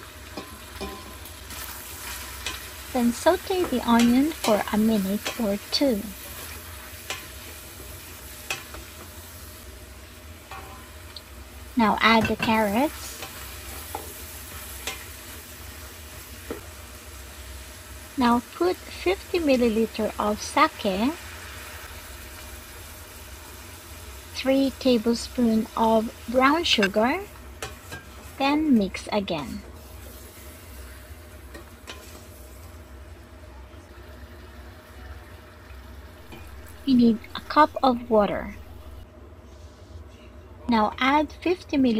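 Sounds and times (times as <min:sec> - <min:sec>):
meat and vegetables sizzling in oil: 0:00.0 - 0:39.1.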